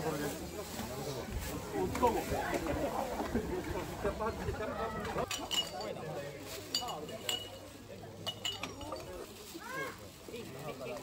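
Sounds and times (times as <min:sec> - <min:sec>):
cans and bottles clinking: 0:06.7 - 0:07.6.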